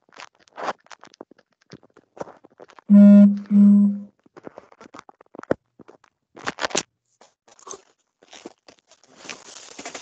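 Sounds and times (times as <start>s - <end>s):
two-tone electronic chime: 2.9s - 4.0s.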